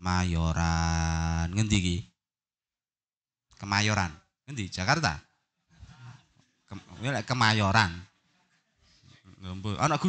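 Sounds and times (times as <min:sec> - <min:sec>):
man speaking into a microphone: 0:00.0 - 0:02.1, 0:03.6 - 0:06.0, 0:06.7 - 0:08.1, 0:09.3 - 0:10.0.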